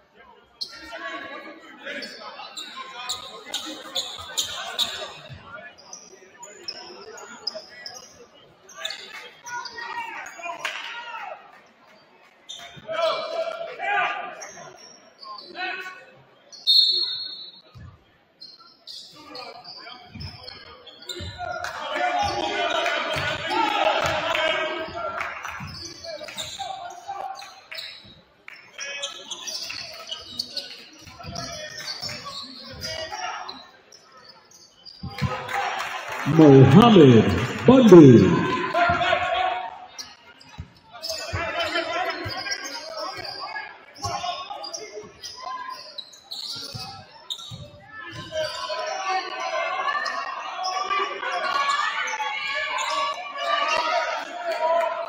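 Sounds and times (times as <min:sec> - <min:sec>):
echoing crowd voices: 0:29.1 - 0:45.8.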